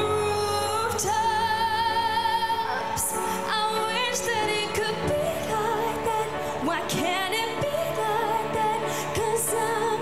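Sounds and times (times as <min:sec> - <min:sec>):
musical accompaniment: 0:00.0 - 0:10.0
woman singing a pop ballad: 0:00.0 - 0:10.0.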